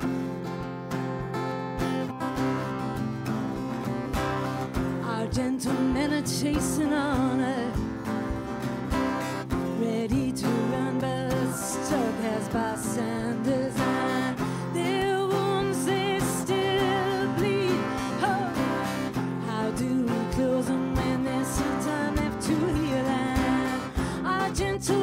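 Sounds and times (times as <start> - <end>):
strummed acoustic guitar: 0.0 - 25.0
woman singing: 4.7 - 25.0.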